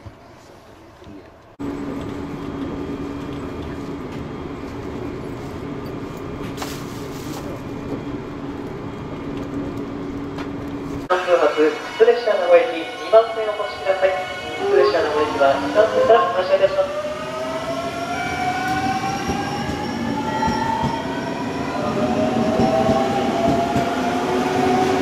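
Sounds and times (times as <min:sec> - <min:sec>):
train running rumble and hum: 0:01.0 - 0:11.4, 0:13.2 - 0:25.0
station platform noise: 0:01.4 - 0:25.0
person speaking: 0:11.1 - 0:17.0.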